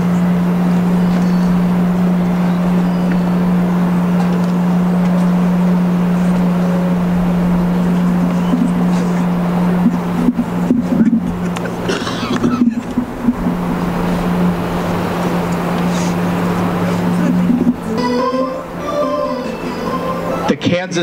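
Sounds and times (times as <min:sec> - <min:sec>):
distant voices in stadium: 0:00.0 - 0:21.0
low mechanical hum: 0:00.0 - 0:21.0
brief pitched sound: 0:17.5 - 0:20.7.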